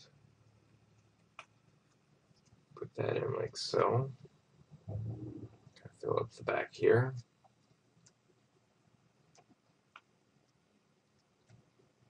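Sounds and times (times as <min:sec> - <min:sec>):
low room hum: 0:00.0 - 0:12.0
person speaking: 0:02.8 - 0:04.2, 0:04.9 - 0:07.2
computer mouse clicks: 0:09.3 - 0:10.6.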